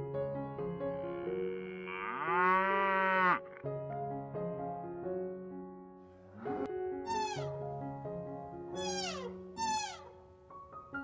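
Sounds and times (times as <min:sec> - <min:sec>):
soft background music: 0:00.0 - 0:11.0
cow mooing: 0:01.4 - 0:03.5
high-pitched animal calls: 0:07.1 - 0:07.5, 0:08.8 - 0:10.2.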